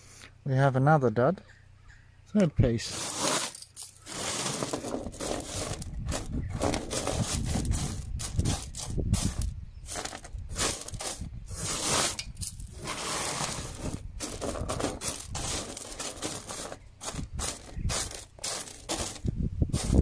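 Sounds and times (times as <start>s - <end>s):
wet gravel scraping and rattling: 2.8s - 20.0s.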